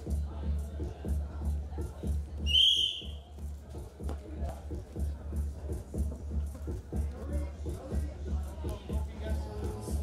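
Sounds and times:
background music with steady beat: 0.0s - 10.0s
referee whistle blast: 2.5s - 3.2s.

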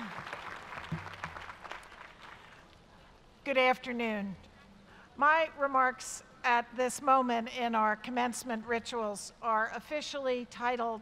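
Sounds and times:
audience applause: 0.0s - 2.6s.

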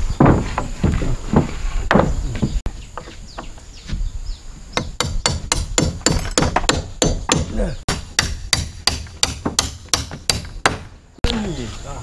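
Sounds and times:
hammer knocking on timber: 4.8s - 10.9s.

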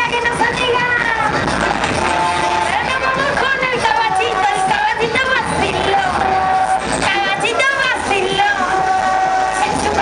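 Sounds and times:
crowd noise: 0.0s - 10.0s
fairground music: 0.0s - 10.0s.

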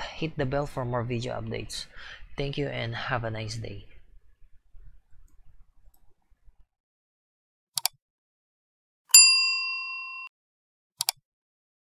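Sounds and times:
bright bell ding: 9.1s - 10.3s.

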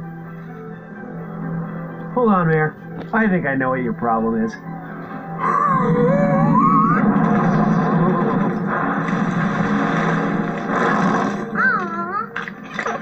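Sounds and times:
busy cartoon music: 0.0s - 13.0s
short wavering vocal sound: 5.4s - 7.1s
laugh sliding up in pitch: 5.4s - 8.6s.

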